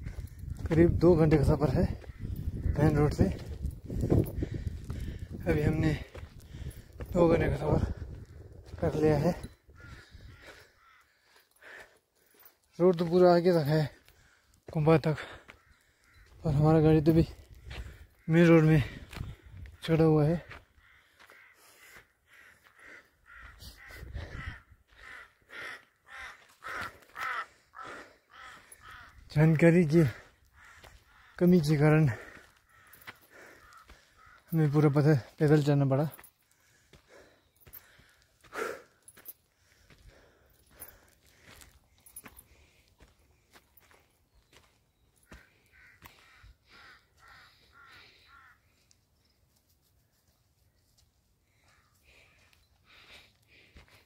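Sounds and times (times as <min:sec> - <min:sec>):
crow cawing: 0:01.6 - 0:07.2, 0:07.8 - 0:13.0, 0:13.6 - 0:44.2, 0:45.2 - 0:49.0, 0:51.5 - 0:54.0
bird calling faintly: 0:09.5 - 0:11.8, 0:30.4 - 0:34.9, 0:43.9 - 0:50.9.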